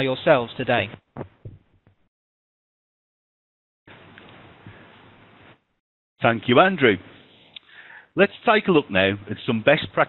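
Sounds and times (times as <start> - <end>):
faint low thuds: 1.0 - 2.0.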